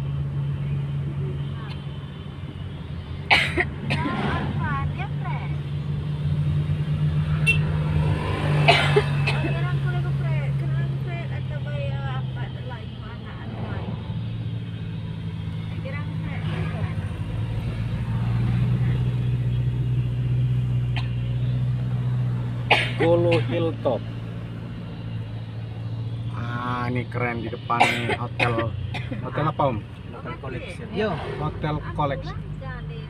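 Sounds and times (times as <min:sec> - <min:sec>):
car engine droning: 0:00.0 - 0:33.0
road noise inside car: 0:00.0 - 0:33.0.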